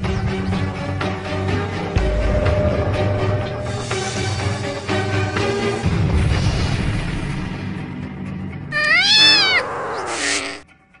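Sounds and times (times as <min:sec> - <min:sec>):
high meow-like animal cry: 0:08.7 - 0:10.6
raspy animal cry with hiss: 0:08.7 - 0:10.6.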